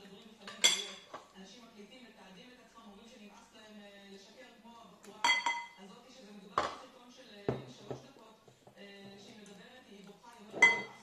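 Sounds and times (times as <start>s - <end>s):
cutlery clinking on tableware: 0.4s - 1.3s, 5.2s - 5.8s, 10.5s - 11.0s.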